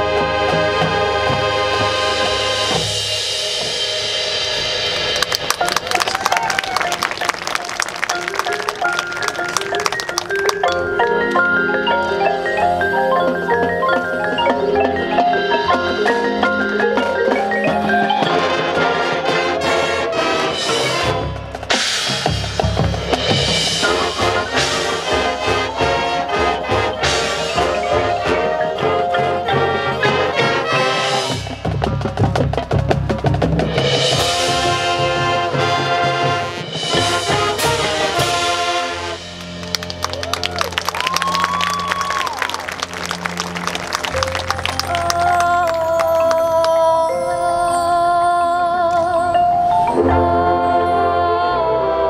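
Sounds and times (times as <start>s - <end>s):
marching band brass: 0.0s - 11.7s, 13.2s - 46.0s
drums: 0.0s - 46.8s
marimbas and mallet percussion: 2.6s - 19.7s, 20.6s - 35.5s, 40.3s - 52.0s.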